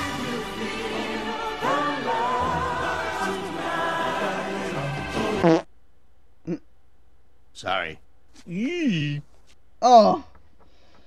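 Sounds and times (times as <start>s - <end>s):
singing over orchestral backing: 0.0s - 5.6s.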